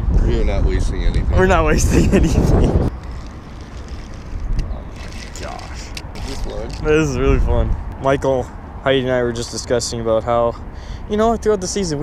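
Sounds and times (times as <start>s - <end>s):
low wind rumble on microphone: 0.0s - 8.8s.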